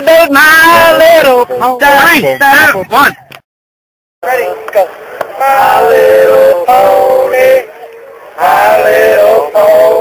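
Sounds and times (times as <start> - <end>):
young male voices singing: 0.0 - 1.8, 4.2 - 10.0.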